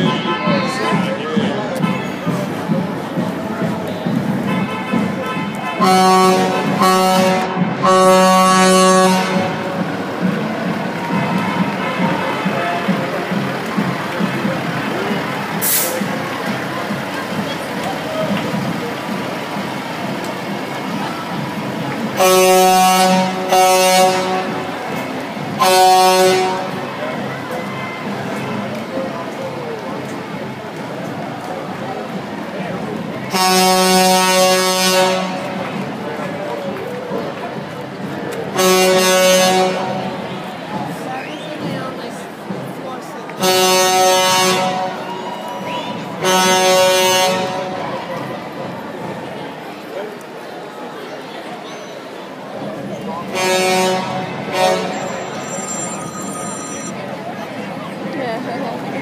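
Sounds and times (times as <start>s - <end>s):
truck air horn blasts: 4.4s - 9.9s, 22.2s - 24.8s, 25.6s - 26.9s, 33.3s - 35.6s, 38.6s - 40.5s, 43.4s - 45.3s, 46.0s - 47.9s, 53.3s - 56.9s
heavy truck engine passing: 6.2s - 38.5s.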